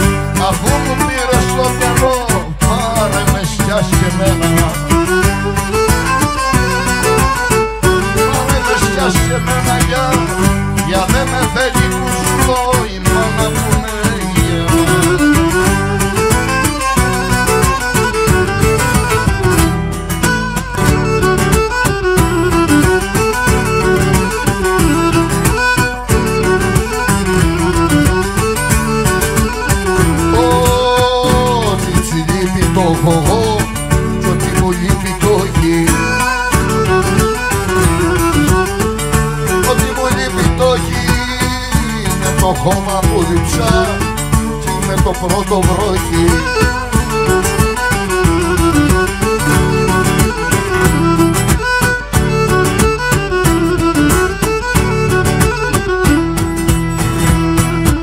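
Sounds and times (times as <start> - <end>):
lute and mandolin strumming: 0.0 - 58.0
percussion beat: 0.0 - 58.0
lyra melody: 13.2 - 31.9, 45.6 - 58.0.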